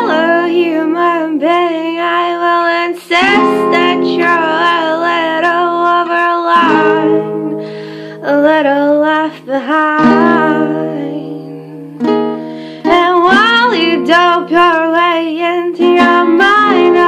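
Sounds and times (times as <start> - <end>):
acoustic guitar chords: 0.0 - 17.0
woman singing folk song: 0.0 - 17.0.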